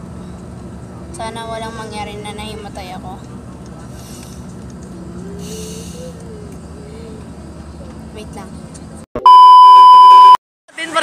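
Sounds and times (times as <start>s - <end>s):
bus engine rumbling: 0.0s - 9.2s, 10.0s - 11.0s
person humming: 5.0s - 7.3s.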